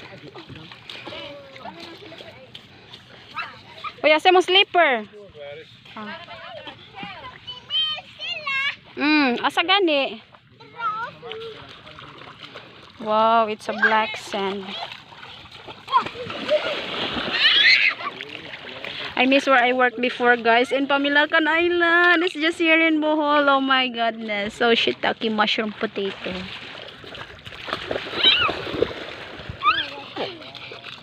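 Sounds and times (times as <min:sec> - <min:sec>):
shallow water splashing: 0:00.0 - 0:31.0.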